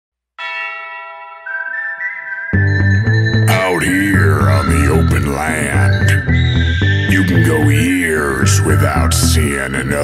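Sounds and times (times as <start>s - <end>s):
bell-like chime: 0.4s - 7.0s.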